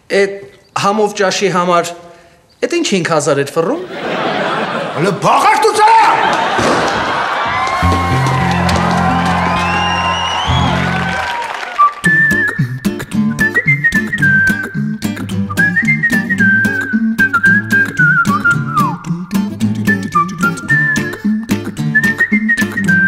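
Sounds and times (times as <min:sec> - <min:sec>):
strummed guitar: 0:07.8 - 0:11.1, 0:17.5 - 0:22.8
whistled melody: 0:07.8 - 0:23.0.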